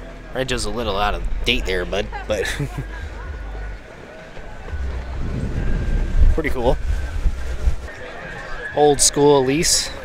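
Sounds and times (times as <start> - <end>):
wind buffeting microphone: 4.4 - 8.4.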